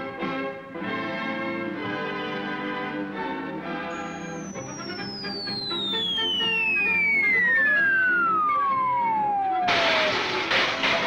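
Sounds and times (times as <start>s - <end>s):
falling whistle sound effect: 3.9s - 10.4s
loud crash: 6.0s - 11.0s.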